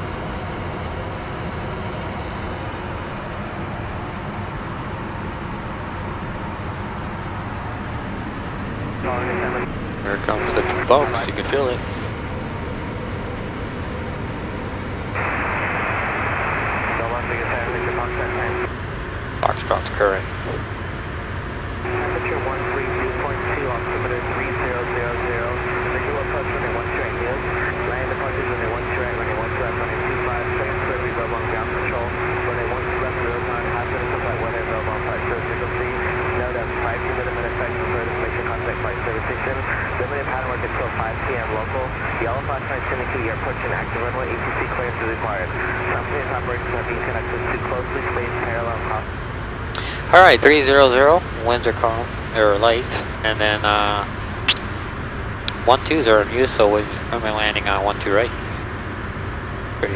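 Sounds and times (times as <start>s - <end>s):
jet cockpit noise: 0.0s - 59.9s
steady radio tone: 8.8s - 13.4s, 14.2s - 18.8s, 19.4s - 20.7s, 21.8s - 49.2s, 49.8s - 54.8s, 55.5s - 58.7s
radio voice: 9.0s - 12.1s, 15.2s - 18.7s, 19.4s - 20.6s, 21.9s - 49.1s, 49.8s - 54.1s, 55.5s - 58.6s.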